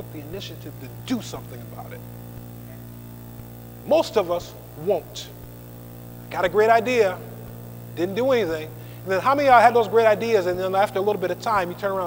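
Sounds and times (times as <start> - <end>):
man's voice: 0.0 - 2.0
electrical mains hum: 0.0 - 12.0.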